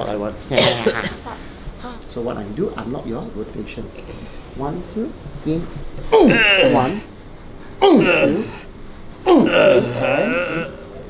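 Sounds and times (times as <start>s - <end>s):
man groaning: 6.1s - 7.1s, 7.8s - 8.7s, 9.3s - 11.0s.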